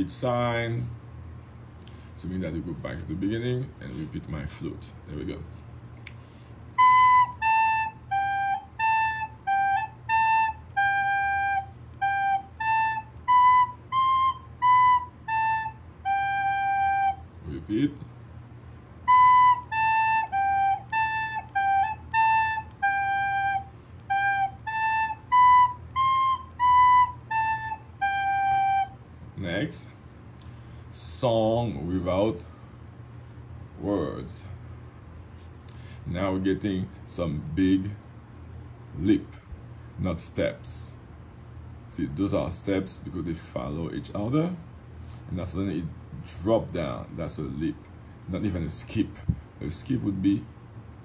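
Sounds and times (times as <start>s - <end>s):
soprano recorder playing a tune: 6.8s - 17.3s, 19.0s - 29.0s.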